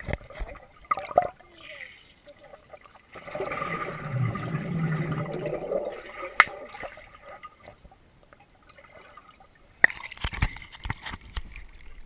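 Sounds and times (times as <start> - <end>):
water churning and bubbling underwater: 0.0 - 12.0.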